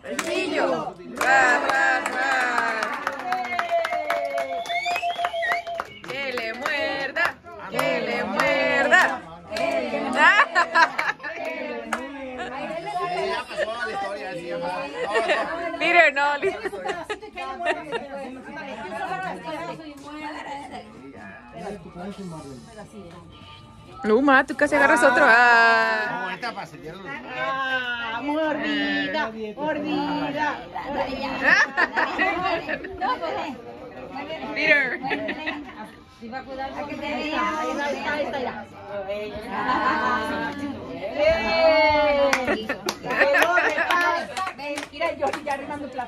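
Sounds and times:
group chatter: 0.0s - 46.0s.

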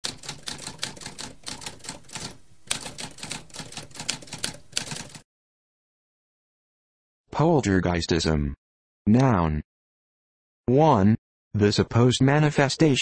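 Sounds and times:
typewriter keys clacking: 0.0s - 5.2s.

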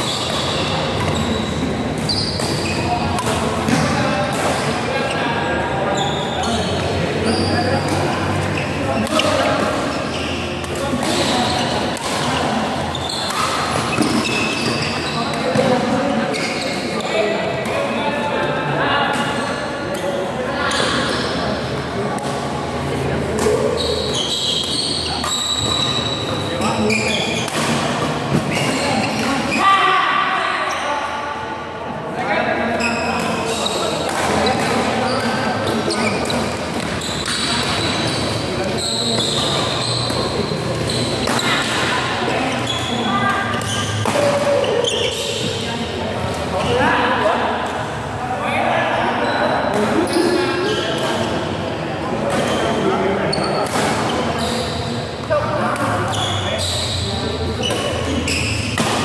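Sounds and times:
people talking: 0.0s - 59.0s
racket hitting shuttlecock: 38.6s - 41.9s, 58.7s - 59.0s.

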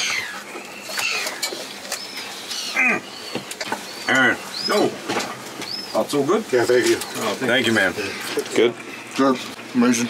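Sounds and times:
birds chirping: 0.0s - 10.0s.

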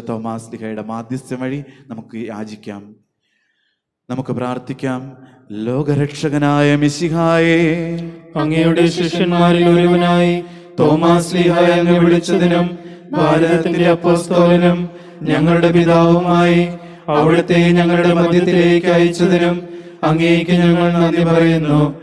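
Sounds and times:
man chanting: 4.1s - 22.0s.

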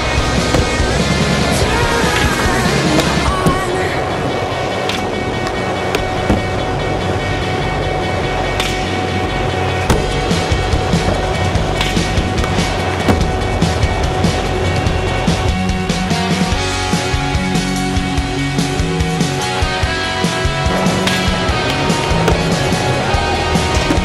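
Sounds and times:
skateboard clacks: 0.0s - 24.0s
skateboard wheels rolling on wood: 0.0s - 24.0s.

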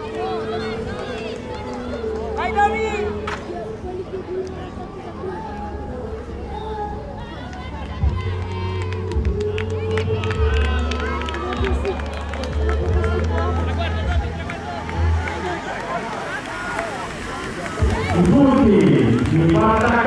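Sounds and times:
spectators shouting and cheering: 0.0s - 3.7s, 7.1s - 20.0s.

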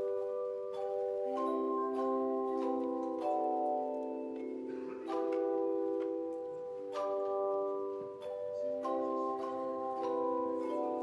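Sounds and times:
handchimes ringing chords: 0.0s - 11.0s.

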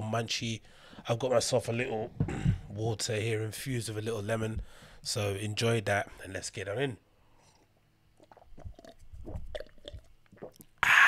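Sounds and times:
man swallowing water: 8.2s - 11.0s
man sighing ah: 10.8s - 11.0s.

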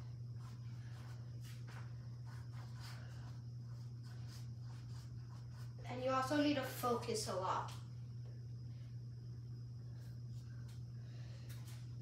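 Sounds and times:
steady low hum: 0.0s - 12.0s
paintbrush strokes on canvas: 0.4s - 5.9s.

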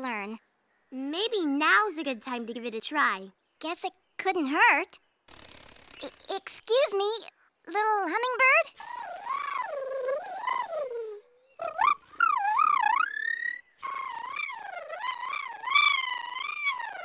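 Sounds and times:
wordless warbling sung tones: 8.9s - 17.0s.

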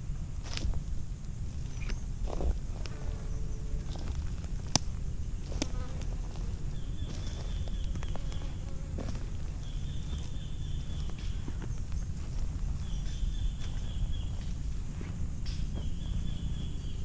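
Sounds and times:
faint insect buzz: 0.0s - 17.0s.

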